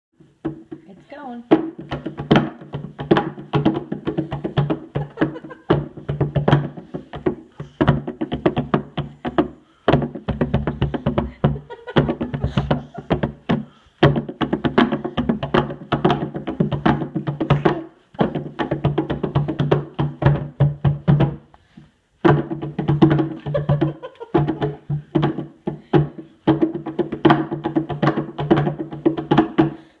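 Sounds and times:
hand drum struck rapidly: 1.5s - 21.5s, 22.2s - 29.9s.

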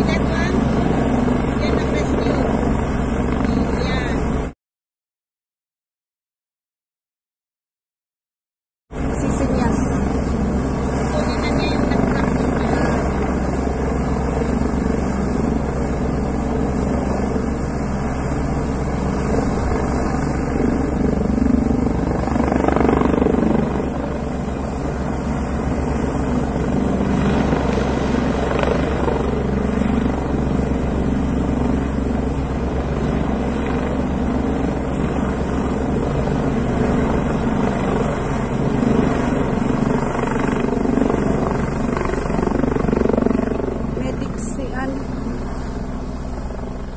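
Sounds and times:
helicopter engine: 0.0s - 4.5s, 8.9s - 46.9s
helicopter rotor blades beating: 0.0s - 4.5s, 8.9s - 46.9s.

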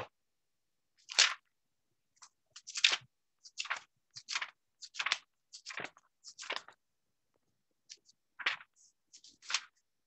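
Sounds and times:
crackling rustling noises: 7.9s - 9.8s.

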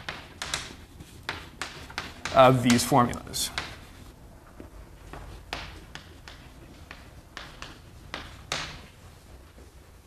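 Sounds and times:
chalk tapping on blackboard: 0.0s - 9.0s
faint room hum: 0.0s - 10.0s.

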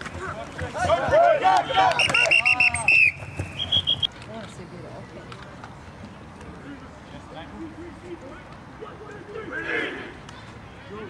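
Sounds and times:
murmur of distant voices: 0.0s - 11.0s
quick whistle blasts: 1.9s - 4.1s
referee's whistle long blast: 1.9s - 4.1s.

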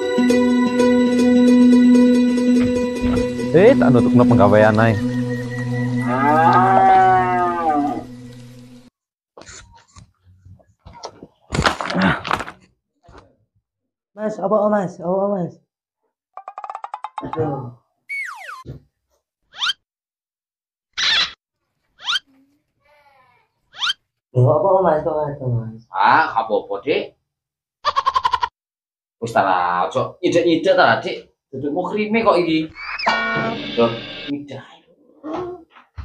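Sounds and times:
falling whistle glide: 5.2s - 8.0s, 18.1s - 18.6s, 32.8s - 34.3s
long animal call: 6.0s - 8.1s
rising boing zips: 18.1s - 18.8s, 32.8s - 34.3s.

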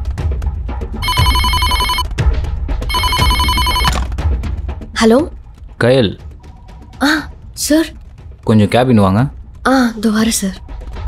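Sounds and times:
desk telephone ringing: 1.0s - 2.1s, 2.9s - 4.0s.

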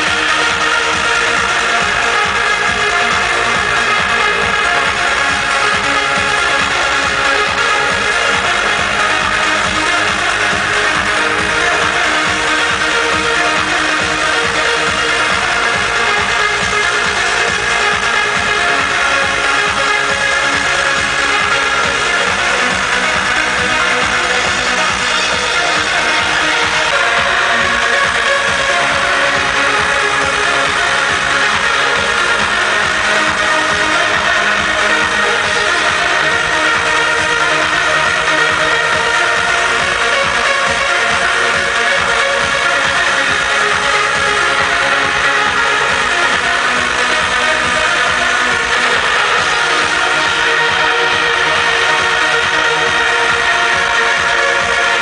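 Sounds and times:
loud electronic dance music: 0.0s - 55.0s
sustained synth chords: 0.0s - 55.0s.

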